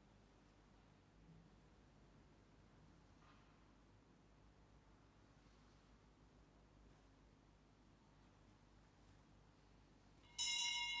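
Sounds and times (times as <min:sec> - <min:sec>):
bell ringing: 0:10.4 - 0:11.0.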